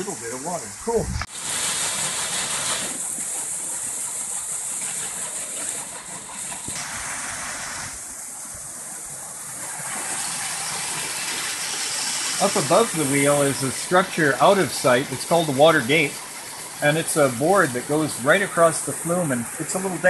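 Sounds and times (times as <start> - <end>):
water rushing and splashing: 0.0 - 20.0.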